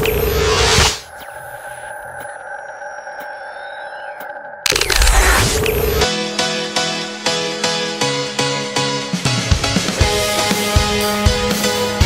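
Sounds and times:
electronic ticks: 1.0 - 6.1.

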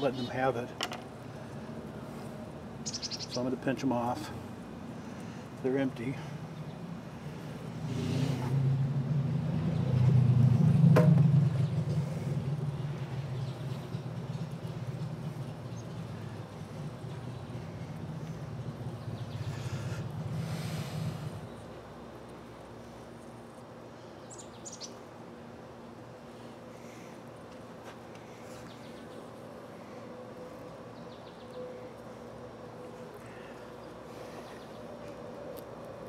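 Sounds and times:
bird chirping: 2.8 - 3.5, 24.1 - 25.0.

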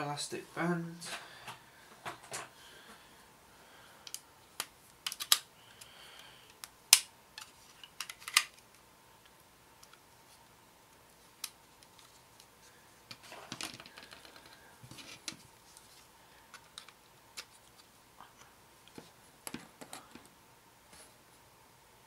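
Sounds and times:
plastic parts clicking and tapping: 4.0 - 5.4, 6.5 - 8.6.

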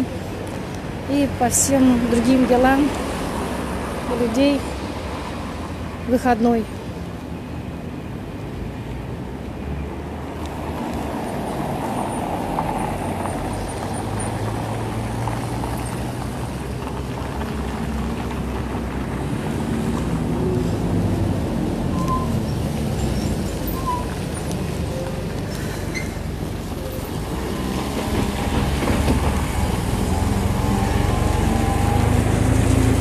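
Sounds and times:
city road traffic: 0.0 - 33.0
heavy vehicle engine drone: 13.3 - 33.0.

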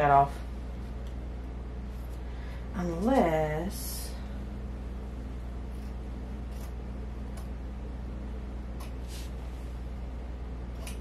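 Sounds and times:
steady low hum: 0.0 - 11.0
scissors snipping fabric: 10.7 - 11.0.

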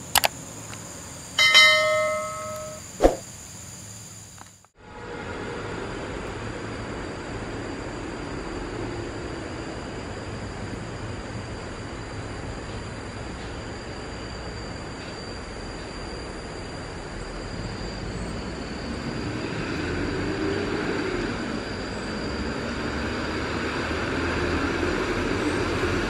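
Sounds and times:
bell-like notification chime: 1.4 - 2.8
faint steady high tone: 1.4 - 3.2
distant vehicle running: 16.9 - 26.0.

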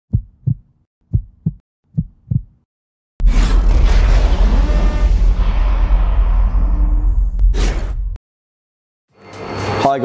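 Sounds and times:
heartbeat thumps: 0.1 - 2.6.

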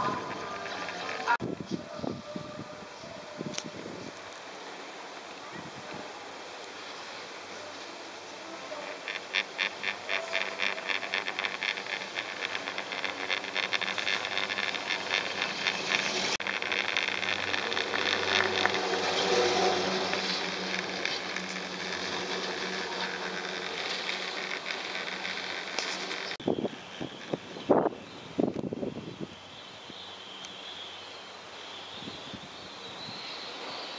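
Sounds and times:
rushing of moving chairlift: 7.7 - 27.4
chairlift roller clatter: 8.8 - 27.4.

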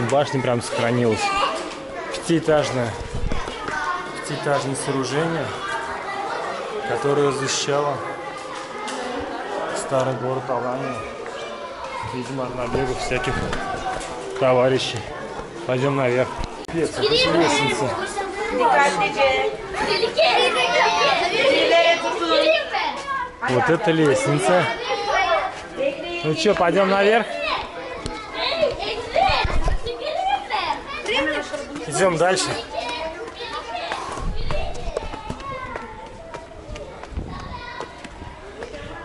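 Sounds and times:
children talking and calling out: 0.0 - 39.0.

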